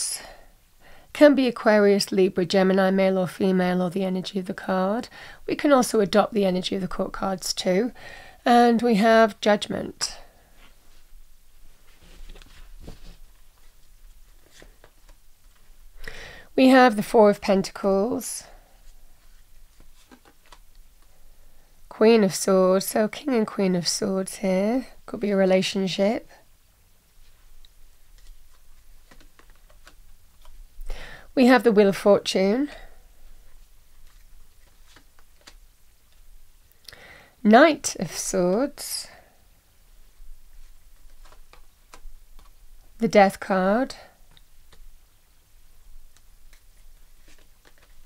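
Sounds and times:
cards being handled: 19.2 - 20.7, 28.0 - 30.6, 33.9 - 36.3, 40.5 - 42.6, 46.0 - 48.0.

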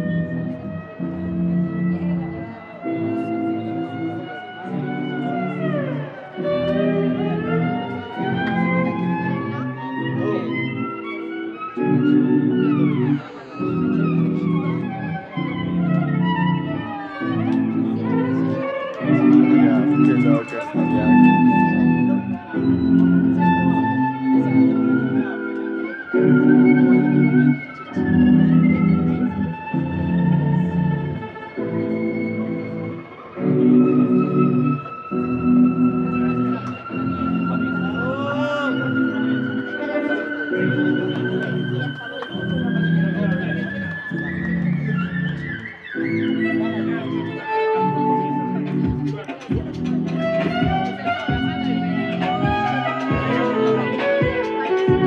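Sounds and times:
looped low violin chords: 0.0 - 55.0.

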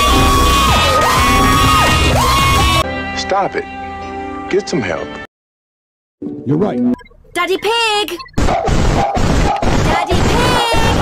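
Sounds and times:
shouting: 0.0 - 2.8
music: 0.0 - 5.3, 6.2 - 7.8.

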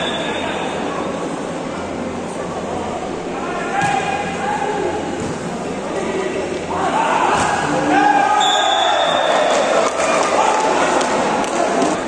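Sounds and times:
people shouting: 6.7 - 11.0.

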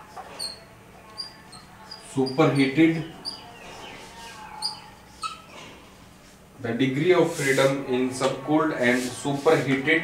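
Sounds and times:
marker squeaking on whiteboard: 0.1 - 5.7.

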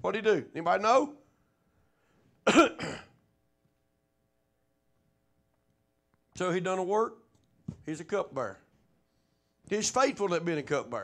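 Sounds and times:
man clearing his throat: 2.4 - 3.2.

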